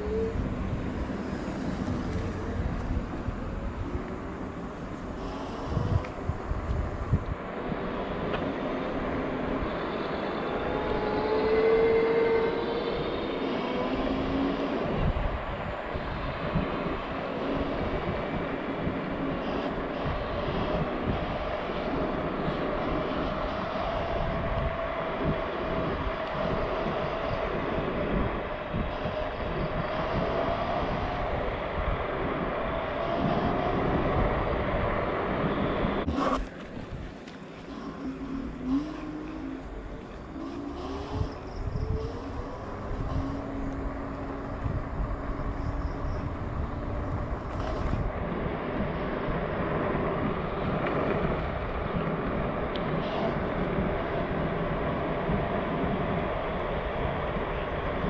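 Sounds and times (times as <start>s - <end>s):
electric motor whine: 0.0s - 58.0s
wind buffeting microphone: 0.0s - 58.0s.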